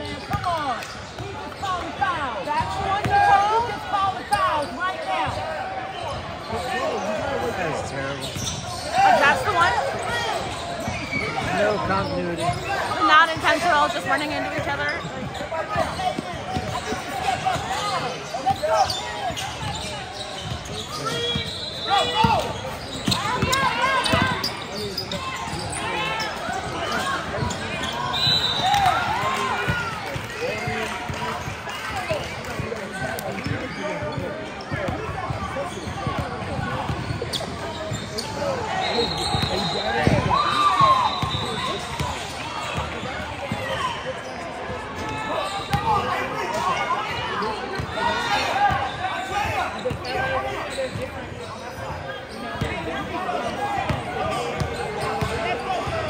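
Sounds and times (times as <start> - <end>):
echoing crowd chatter: 0.0 - 56.0
players and spectators calling out: 0.0 - 56.0.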